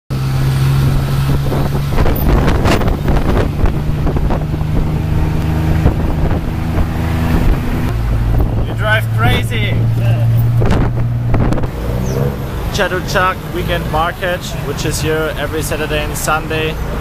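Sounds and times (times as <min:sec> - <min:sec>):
tuk-tuk engine droning: 0:00.1 - 0:17.0
wind buffeting microphone: 0:00.2 - 0:12.7.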